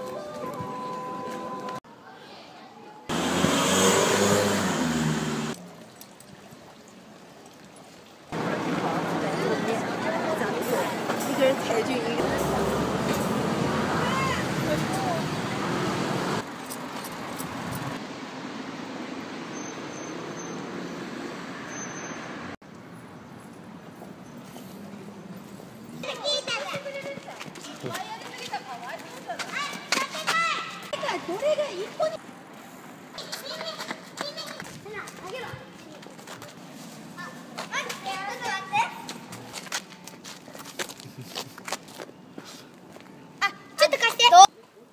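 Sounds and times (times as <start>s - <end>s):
street traffic: 0.0s - 7.4s, 8.2s - 44.9s
children shouting: 13.9s - 15.2s
children calling and squealing: 29.4s - 32.2s, 33.1s - 35.7s.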